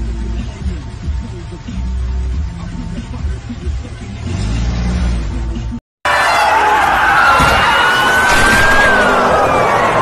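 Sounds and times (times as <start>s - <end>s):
car engine running: 0.0s - 5.8s.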